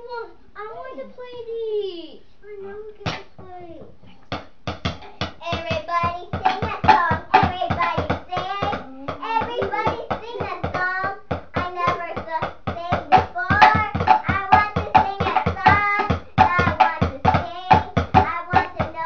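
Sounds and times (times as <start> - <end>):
rapid percussive hits: 4.3 - 19.0
child singing: 5.4 - 19.0.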